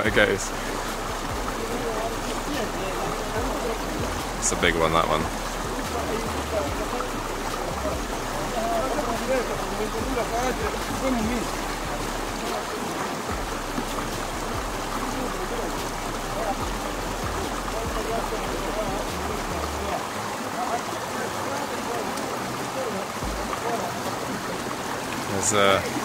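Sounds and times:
men talking faintly: 0.0 - 26.0
stream running over rocks: 0.0 - 26.0.

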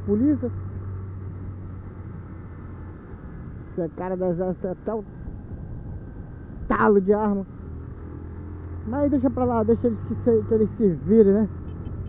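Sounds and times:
motorcycle engine hum: 0.0 - 12.0
wind and road noise: 0.0 - 12.0.

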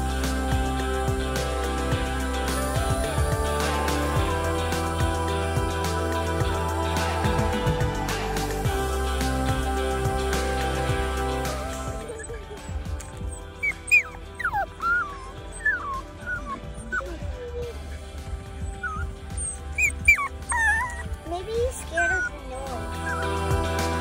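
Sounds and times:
puppy whining and whimpering: 12.0 - 23.4.

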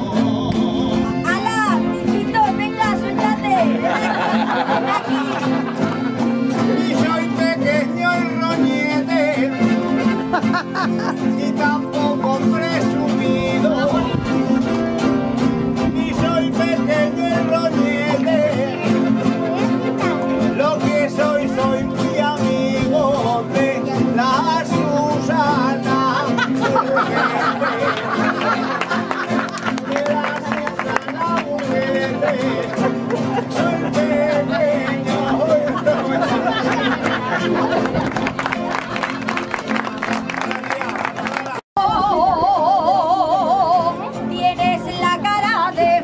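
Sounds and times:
person singing: 0.0 - 1.9, 6.5 - 14.7, 15.6 - 28.5, 29.4 - 37.0, 41.8 - 46.0
accordion chords: 0.0 - 41.6
guitars playing: 0.0 - 46.0
people laughing: 3.5 - 7.5, 9.9 - 11.6, 25.5 - 41.6.

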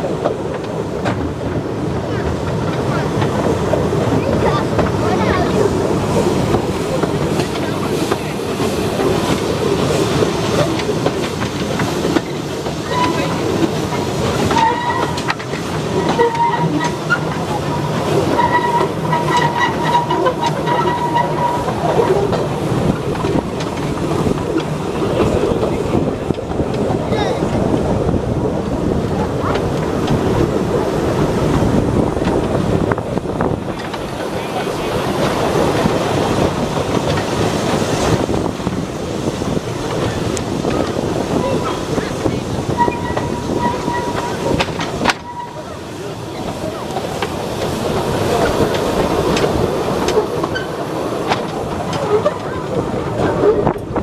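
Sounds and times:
train wheels rumbling on rails: 0.0 - 54.0
thin high wheel squeal: 12.8 - 13.5, 14.5 - 15.3, 15.9 - 22.2, 42.7 - 46.5.

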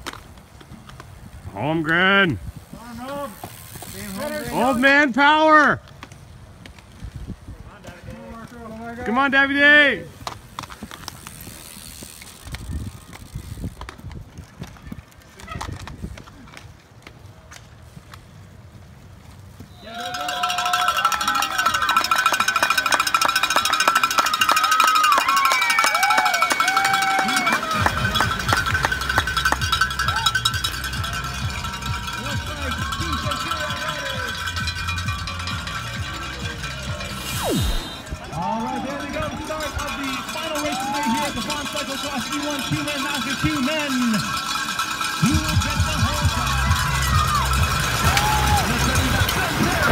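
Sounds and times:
outdoor race sounds: 0.0 - 49.9
people cheering and whooping: 19.8 - 28.6, 29.9 - 31.4, 37.0 - 41.8, 46.0 - 49.9
cowbells clanging: 19.9 - 37.3, 38.2 - 49.8
low rumble: 36.9 - 39.6.

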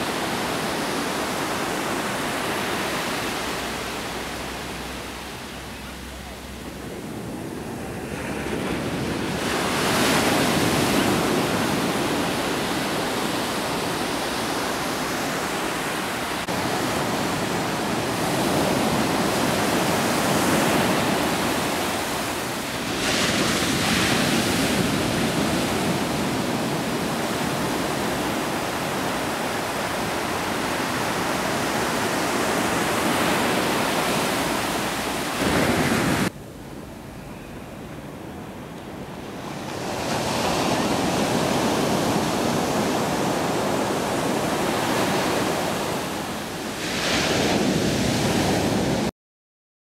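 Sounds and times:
ocean surf breaking on beach: 0.0 - 37.1, 37.7 - 49.1.

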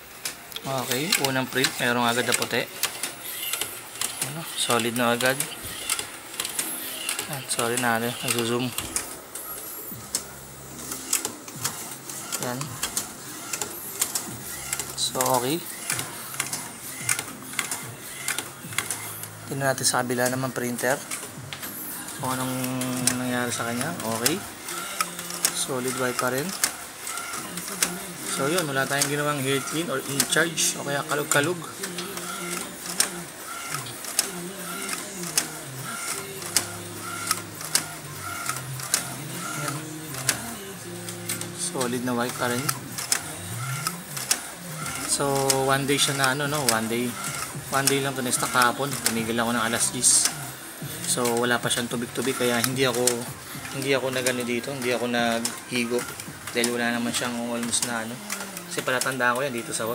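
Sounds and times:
printer carriage motor whir: 0.0 - 59.9
sharp printer clicks: 0.1 - 59.9.

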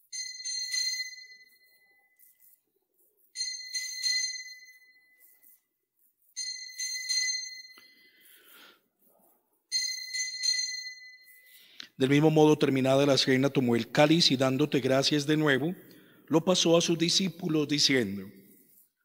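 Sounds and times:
altar bells ringing: 0.0 - 2.1, 3.4 - 5.4, 6.4 - 8.6, 9.7 - 14.4.

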